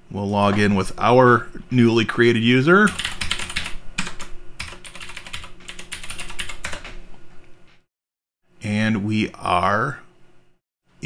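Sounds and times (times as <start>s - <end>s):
computer keyboard typing: 2.9s - 7.0s.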